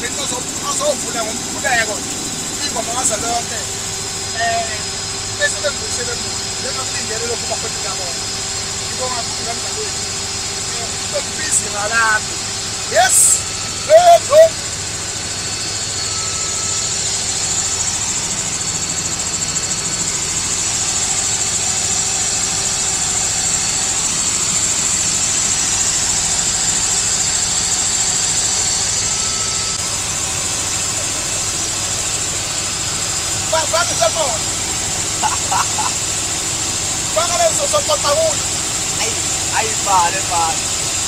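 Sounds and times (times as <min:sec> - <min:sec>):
helicopter engine and rotor noise: 0:00.0 - 0:41.0
person speaking: 0:33.4 - 0:34.5, 0:37.1 - 0:40.6.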